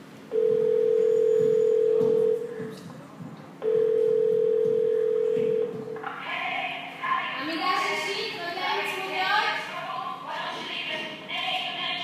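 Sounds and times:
faint voices: 0.8 - 12.0.

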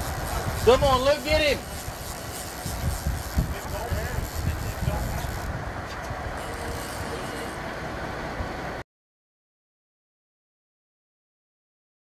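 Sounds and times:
wind buffeting microphone: 0.0 - 6.8
boat engine running: 0.0 - 8.8
faint voices: 0.6 - 7.6.

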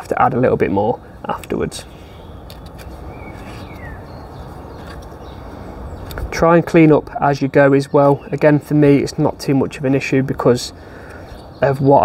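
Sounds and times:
outdoor background rumble: 0.0 - 12.0
falling bird chirp: 1.8 - 6.4.

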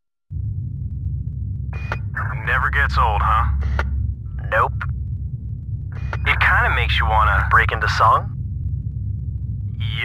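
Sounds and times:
low rumble: 0.2 - 10.0.

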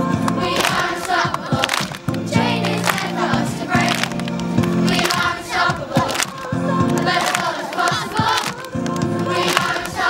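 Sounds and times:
backing music: 0.0 - 10.0
children's choir singing: 0.0 - 10.0.

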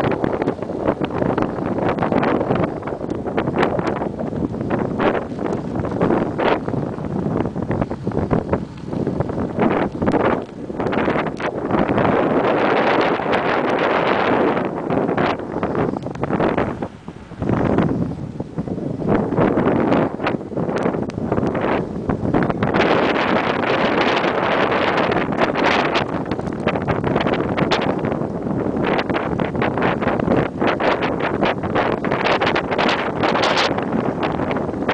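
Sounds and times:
wind buffeting microphone: 0.0 - 34.9.

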